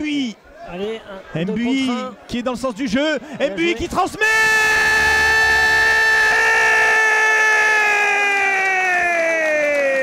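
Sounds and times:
commentator's long goal shout: 0:04.1 - 0:10.0.

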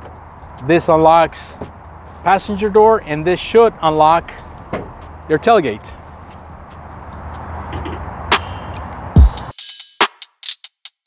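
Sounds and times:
tailgate metallic clang: 0:04.6 - 0:05.0, 0:07.7 - 0:08.9.

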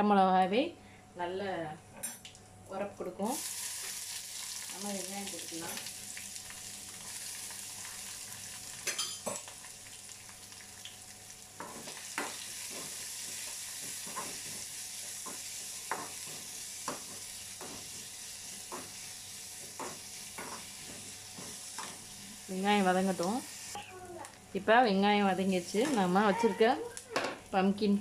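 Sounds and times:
onions sizzling in oil: 0:03.2 - 0:24.4, 0:25.2 - 0:27.7.

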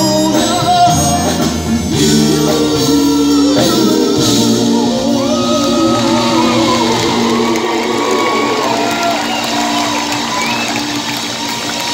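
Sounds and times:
live band holding chord: 0:00.0 - 0:11.9
audience cheering and whooping: 0:05.0 - 0:11.9.

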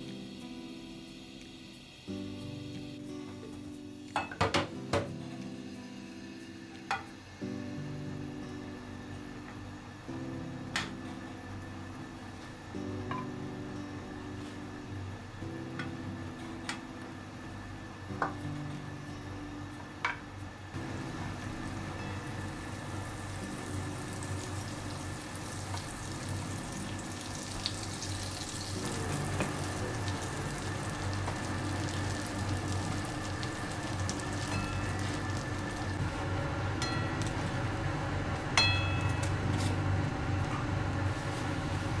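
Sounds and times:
bread frying sizzle: 0:20.7 - 0:42.0.

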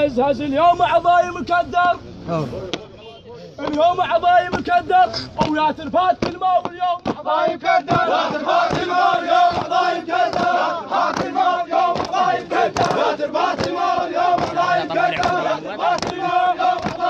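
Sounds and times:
men chanting rhythmically: 0:03.6 - 0:17.0.

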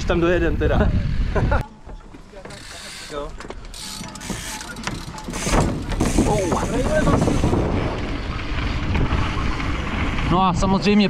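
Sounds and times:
mountain bikes clicking and rattling: 0:01.2 - 0:11.0.

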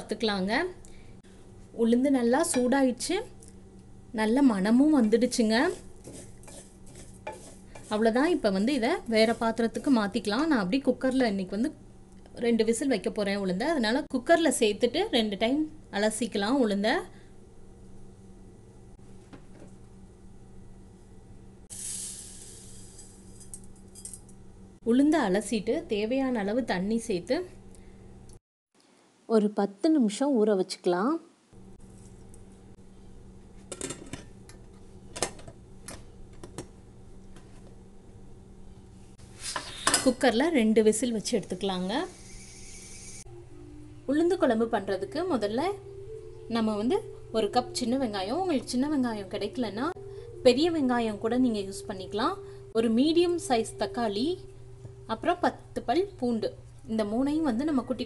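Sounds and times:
steady low hum: 0:00.0 - 0:28.4, 0:31.5 - 0:58.0
lentils scraping in a pan: 0:05.6 - 0:08.2, 0:21.7 - 0:23.5, 0:42.0 - 0:43.2.

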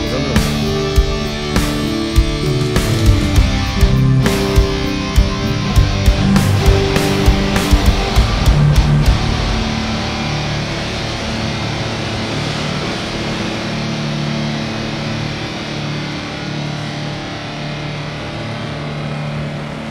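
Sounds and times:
low droning hum: 0:00.0 - 0:19.9.

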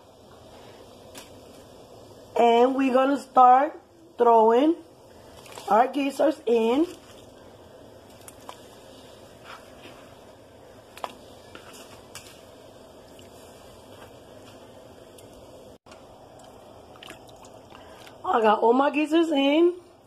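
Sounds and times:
steady background hiss: 0:00.0 - 0:20.0
wet squishes: 0:05.3 - 0:05.7, 0:06.8 - 0:07.4, 0:16.3 - 0:18.2.

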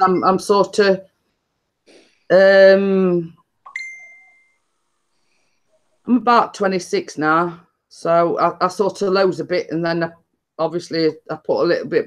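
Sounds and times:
high ding: 0:03.7 - 0:04.6.

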